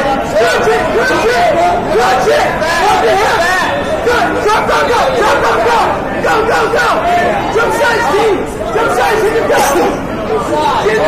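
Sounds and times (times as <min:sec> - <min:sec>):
crowd chatter and shouting: 0:00.0 - 0:11.0.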